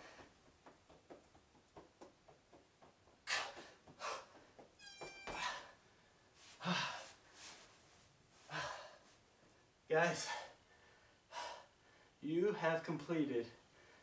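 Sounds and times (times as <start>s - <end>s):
man breathing hard and gasping: 3.2s - 4.6s, 6.5s - 7.6s, 8.4s - 9.2s, 10.2s - 12.2s.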